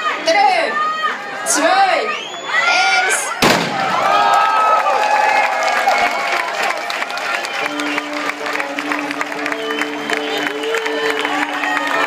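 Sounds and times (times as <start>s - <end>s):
crowd talking and calling out: 0.0s - 12.0s
starting gun shot: 3.4s - 3.9s.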